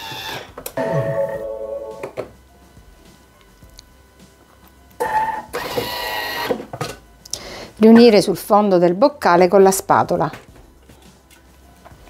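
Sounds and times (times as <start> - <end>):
loud tonal sound: 0.8 - 2.2.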